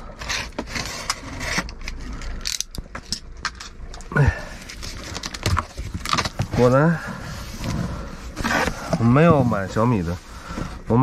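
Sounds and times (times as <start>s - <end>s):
cardboard and tape scraping: 0.0s - 2.2s, 4.8s - 11.0s.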